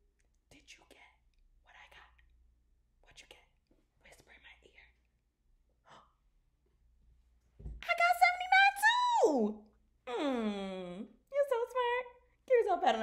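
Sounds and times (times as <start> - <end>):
faint whispering: 0.5 - 2.3, 3.0 - 5.1, 5.8 - 6.3.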